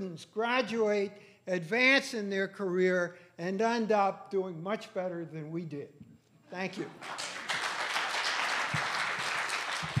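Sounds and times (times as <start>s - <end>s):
audience applauding: 6.9s - 10.0s.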